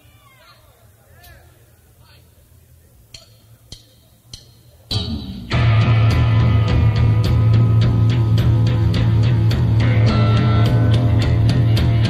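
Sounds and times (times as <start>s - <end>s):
drumstick count-in clicks: 3.1s - 5.1s.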